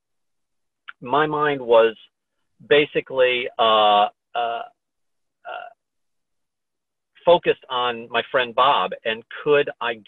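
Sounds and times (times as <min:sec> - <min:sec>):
man saying uh: 0:00.9 - 0:02.0, 0:02.7 - 0:04.7, 0:05.5 - 0:05.7, 0:07.3 - 0:10.0.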